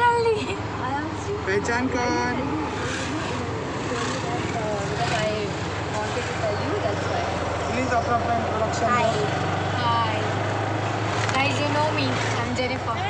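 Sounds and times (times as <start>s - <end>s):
auto-rickshaw engine running: 0.0s - 13.0s
people talking and calling: 0.0s - 13.0s
road noise: 0.0s - 13.0s.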